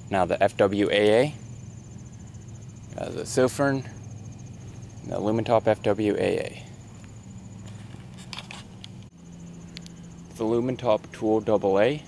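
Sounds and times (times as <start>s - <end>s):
crickets chirping: 0.0s - 12.0s
low steady hum: 0.0s - 12.0s.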